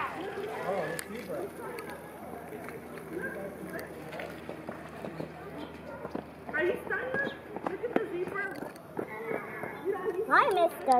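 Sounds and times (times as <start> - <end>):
people chattering: 0.0 - 10.9.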